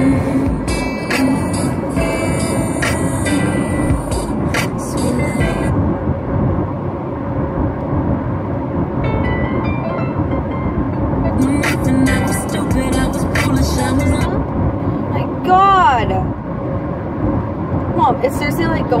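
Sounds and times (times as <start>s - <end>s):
music playing: 0.0s - 6.0s, 9.0s - 14.7s
car road and engine rumble: 0.0s - 19.0s.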